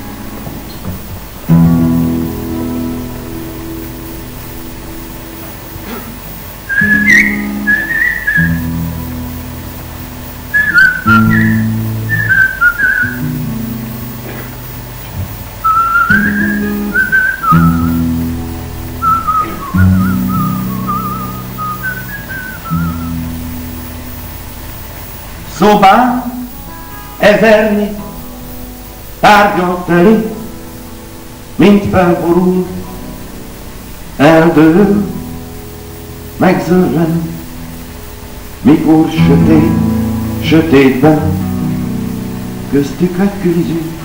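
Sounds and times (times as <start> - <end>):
acoustic guitar chords strummed: 0.0 - 44.0
whistled melody: 6.7 - 9.4, 10.4 - 14.0, 15.6 - 23.6.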